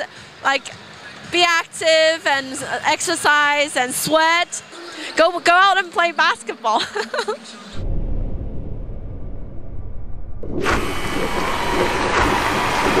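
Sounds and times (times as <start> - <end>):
woman laughing: 6.7 - 7.6
loud rushing noise: 7.8 - 13.0
low rumble: 7.8 - 13.0.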